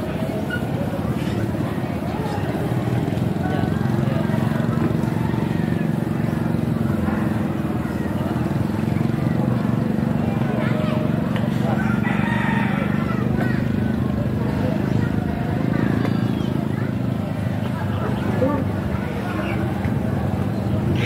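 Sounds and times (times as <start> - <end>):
engine running: 0.0 - 21.0
people talking: 0.0 - 21.0.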